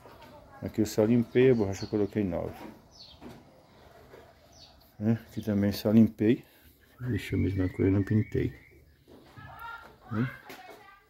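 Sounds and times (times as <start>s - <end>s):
faint bird chirp: 6.5s - 10.4s.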